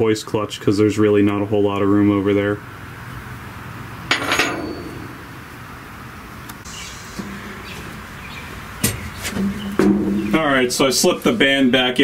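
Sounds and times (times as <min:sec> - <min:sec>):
steel parts clinking and knocking: 0:04.1 - 0:05.4
metal clank: 0:04.1 - 0:05.6.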